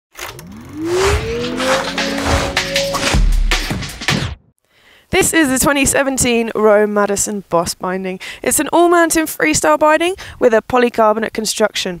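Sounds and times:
electronic tone sweeping up: 0.2 - 3.4
whooshing noise: 0.3 - 3.4.

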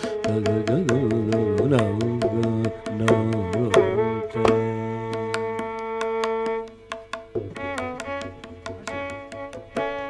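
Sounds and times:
man singing syllables: 0.0 - 6.0
hand drum and clay pot strokes: 0.0 - 10.0.

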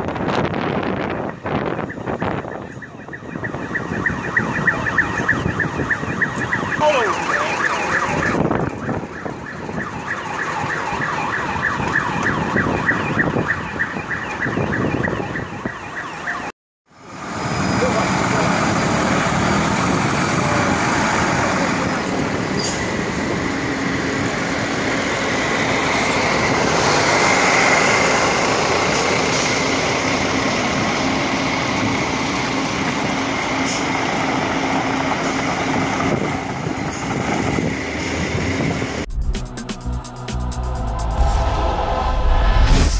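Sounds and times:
engine and street noise: 0.0 - 42.9
emergency siren wailing: 0.1 - 42.9
music sting: 39.1 - 42.9.

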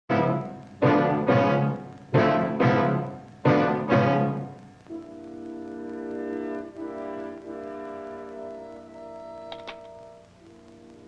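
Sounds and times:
french horns playing low chord: 0.1 - 11.0.

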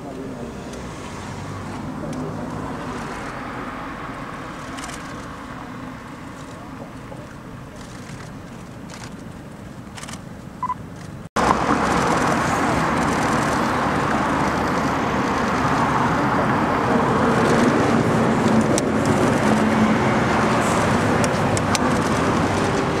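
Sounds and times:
road traffic noise: 0.0 - 23.0.

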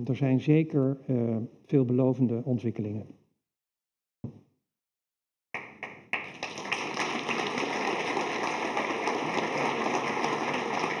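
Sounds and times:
audience applause: 6.1 - 11.0.

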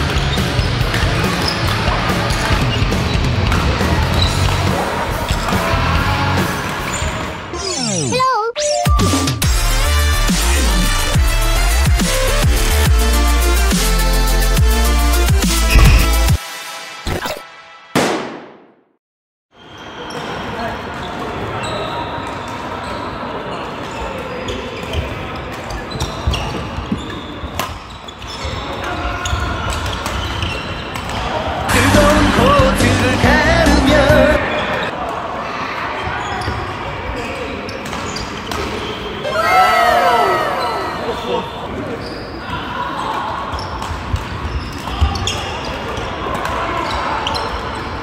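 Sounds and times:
shoes squeaking on sports floor: 0.0 - 3.2, 15.6 - 16.4, 22.8 - 31.2, 36.0 - 39.2, 40.6 - 46.2, 46.8 - 48.0
voices in a large hall: 0.0 - 8.5, 19.6 - 48.0.

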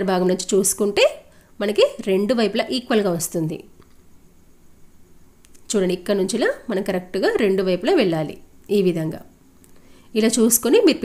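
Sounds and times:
woman speaking: 0.0 - 3.7, 5.6 - 9.3, 10.1 - 11.0.

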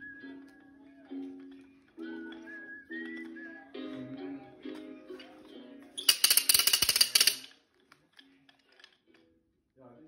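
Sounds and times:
wooden ratchet noisemaker clatter: 6.0 - 7.5.

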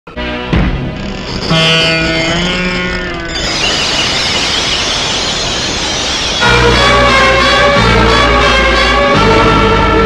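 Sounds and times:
dramatic music with falling glide: 0.2 - 10.0
steady rushing noise: 3.1 - 8.0.

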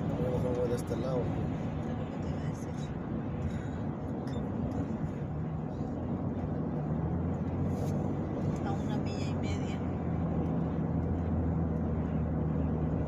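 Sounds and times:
car road and engine noise: 0.0 - 13.0.

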